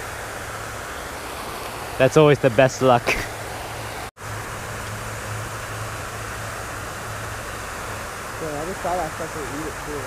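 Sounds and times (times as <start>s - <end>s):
fountain spray hissing: 0.0s - 10.0s.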